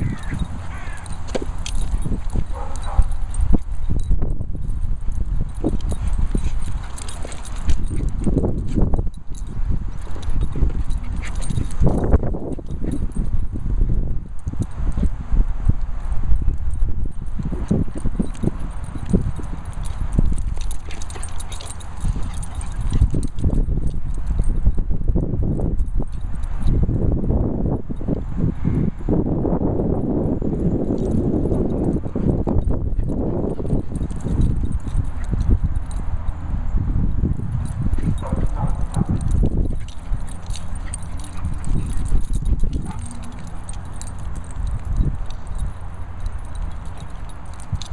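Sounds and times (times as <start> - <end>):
dogs scuffling: 0.0 - 4.0, 5.6 - 9.0, 9.6 - 13.1, 18.0 - 24.3, 37.7 - 47.9
continuous low rumble: 0.0 - 47.9.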